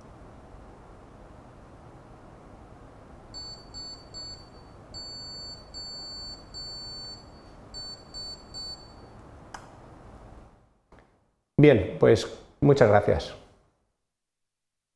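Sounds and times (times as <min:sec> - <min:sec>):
buzzer beeping: 0:03.4 - 0:09.1
click: 0:09.2 - 0:09.7.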